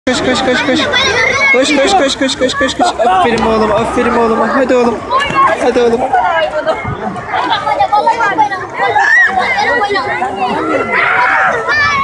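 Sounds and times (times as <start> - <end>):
people chattering: 0.1 - 12.0.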